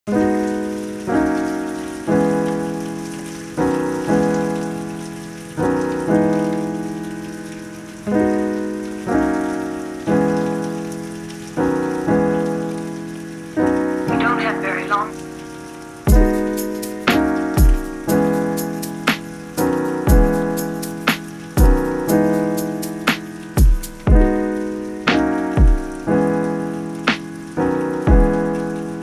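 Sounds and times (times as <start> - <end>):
keyboard chords: 0.1 - 29.0
rain hiss: 0.1 - 29.0.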